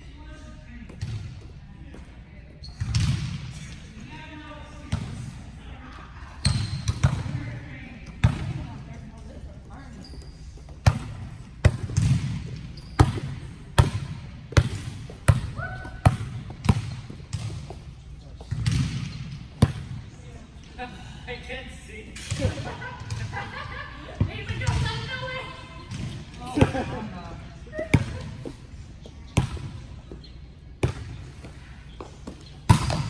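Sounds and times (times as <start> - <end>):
volleyball smacks in gym: 10.8 - 17.8, 32.6 - 33.0.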